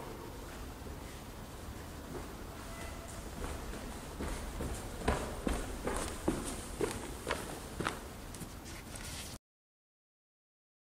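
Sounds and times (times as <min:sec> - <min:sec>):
footsteps on hard floor: 0:02.1 - 0:08.6.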